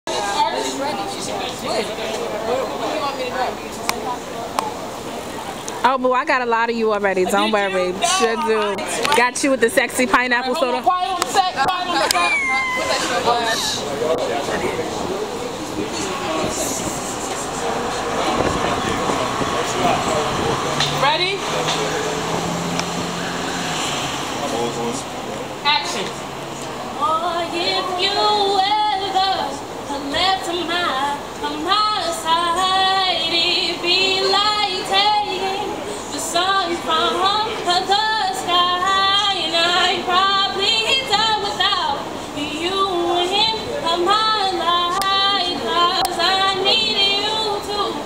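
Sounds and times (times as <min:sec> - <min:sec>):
background noise wash: 0:00.1 - 0:48.0
woman singing: 0:27.0 - 0:48.0.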